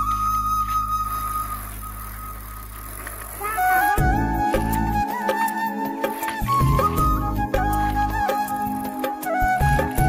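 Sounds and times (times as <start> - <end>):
flute melody: 0.0 - 2.6, 3.4 - 10.0.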